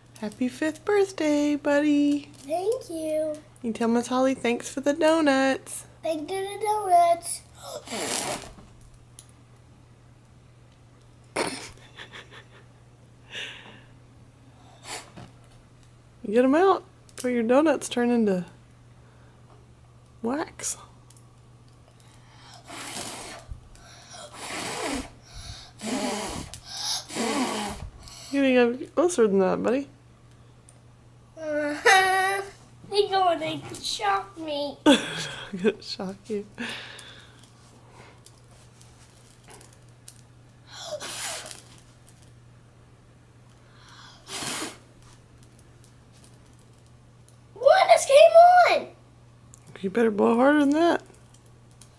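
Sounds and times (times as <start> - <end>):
child blowing breathy puffs: 7.6 - 8.5, 14.6 - 15.2, 22.2 - 28.4, 40.7 - 41.6, 43.7 - 44.9.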